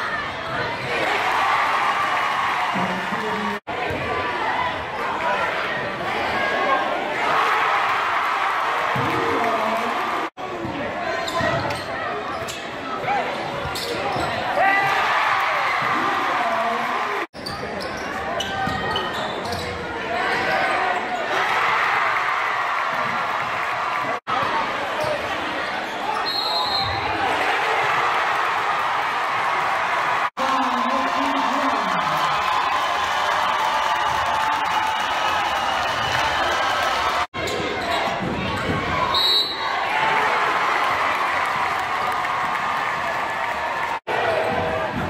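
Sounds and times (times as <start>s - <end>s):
large crowd noise and voices: 0.0s - 45.0s.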